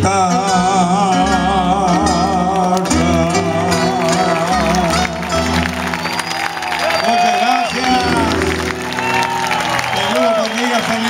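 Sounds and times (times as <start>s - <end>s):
acoustic guitars strumming: 0.0s - 9.8s.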